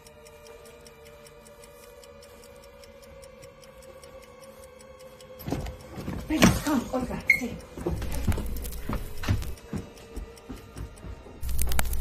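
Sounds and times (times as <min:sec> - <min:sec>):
clock-like ticking: 0:00.0 - 0:12.0
sustained drone: 0:00.0 - 0:12.0.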